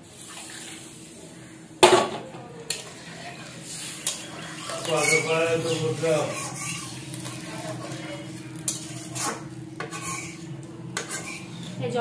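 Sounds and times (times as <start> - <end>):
frying hiss: 0.0 - 12.0.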